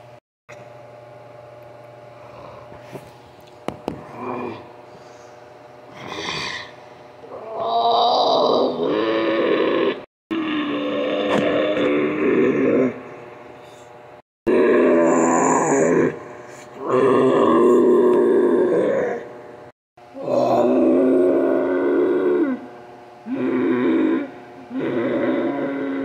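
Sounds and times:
person making ape noises: 0:05.9 - 0:13.0, 0:20.2 - 0:22.7.

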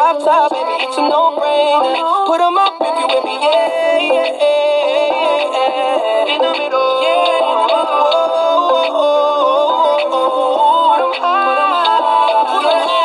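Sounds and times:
song on thin radio broadcast: 0:00.0 - 0:13.0.

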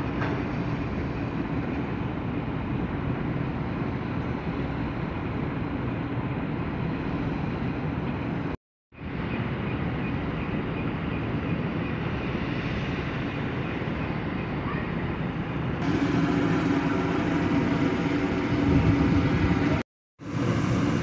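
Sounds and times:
rushing noise: 0:15.2 - 0:21.0
heavy machinery humming: 0:15.8 - 0:21.0.

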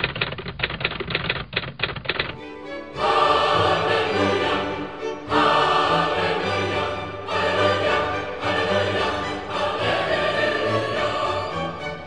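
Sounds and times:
rapid typewriter key clicking: 0:00.0 - 0:02.4
music: 0:02.4 - 0:12.0.

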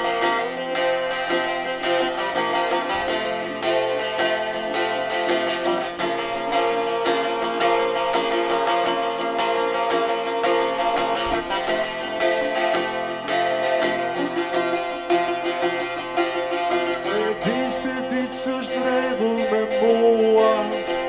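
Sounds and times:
plucked long-necked lute: 0:00.0 - 0:21.0.

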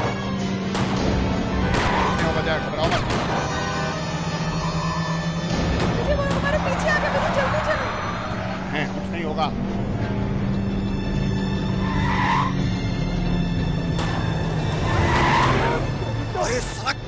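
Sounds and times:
background music with low drone: 0:00.0 - 0:17.0
car engines driving on dirt: 0:00.0 - 0:17.0.

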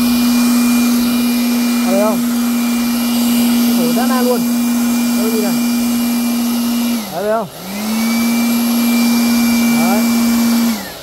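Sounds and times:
electric blower whining: 0:00.0 - 0:11.0.

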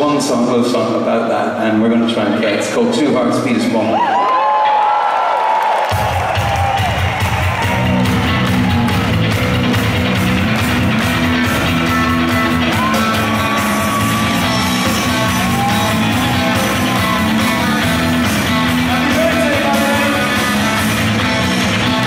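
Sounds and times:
crowd cheering and whistling: 0:03.8 - 0:09.8, 0:10.9 - 0:22.0
live rock band playing: 0:05.9 - 0:22.0.

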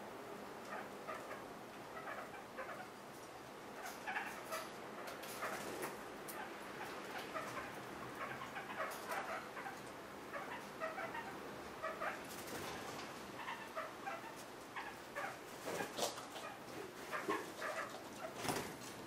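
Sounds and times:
parakeets chirping: 0:00.7 - 0:03.0, 0:03.7 - 0:18.5.

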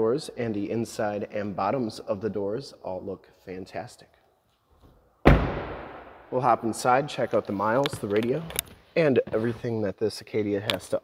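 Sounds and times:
car door slamming: 0:05.2 - 0:06.1.

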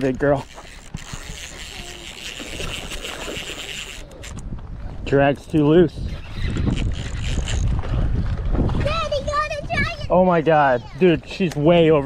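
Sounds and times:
fishing reel drag buzzing: 0:00.0 - 0:04.4, 0:05.4 - 0:07.8
low wind rumble on microphone: 0:00.8 - 0:12.0.

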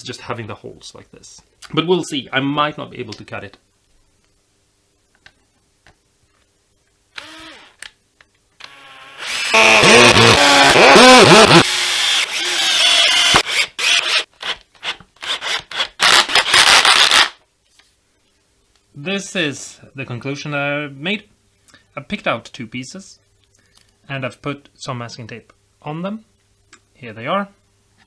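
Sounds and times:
cordless drill driving screws: 0:07.2 - 0:07.8, 0:08.6 - 0:14.2, 0:15.2 - 0:17.4.

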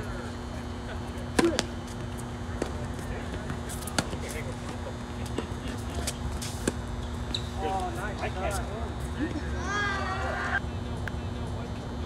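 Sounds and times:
racket hitting tennis ball: 0:01.3 - 0:02.0, 0:02.6 - 0:04.4
tennis ball bouncing: 0:01.3 - 0:04.4.

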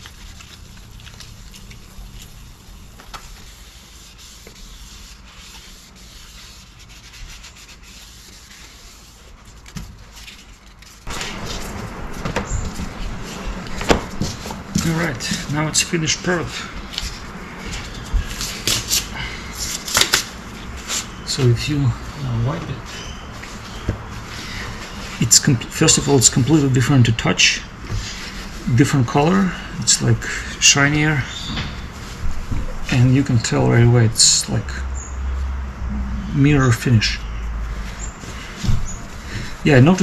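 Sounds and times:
cloth wiping smooth surface: 0:02.5 - 0:09.6.

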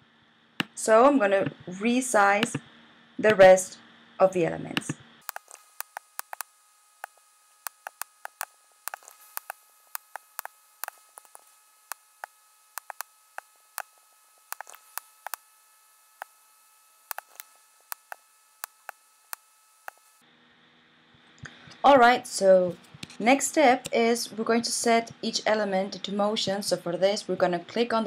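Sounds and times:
mouse and keyboard clicks: 0:04.8 - 0:12.0, 0:12.8 - 0:13.1, 0:14.5 - 0:15.4, 0:17.1 - 0:19.0.

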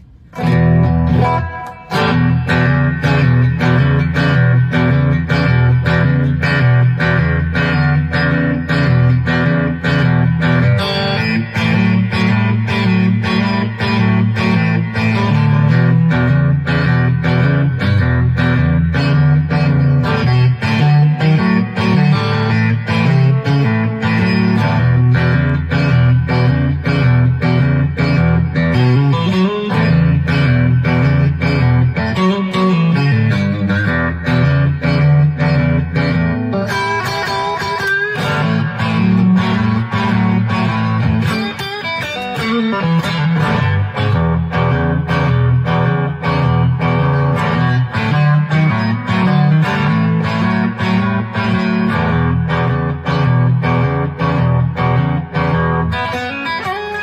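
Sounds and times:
electric guitar blues shuffle: 0:00.0 - 0:57.0.

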